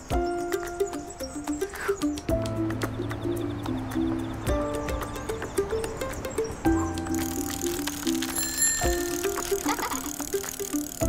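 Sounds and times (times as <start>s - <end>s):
light background music: 0.0s - 11.0s
bicycle freewheel ticking: 7.0s - 11.0s
bicycle bell ring: 8.4s - 9.4s.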